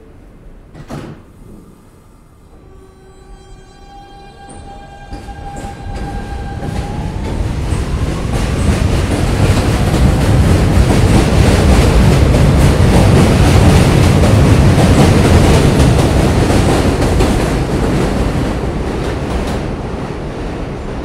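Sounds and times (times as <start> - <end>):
train wheels rumbling and clattering: 4.9 - 21.0.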